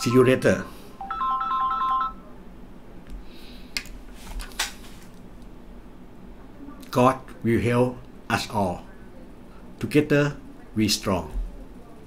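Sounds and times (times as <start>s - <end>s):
phone ringtone beeping melody: 1.0s - 2.2s.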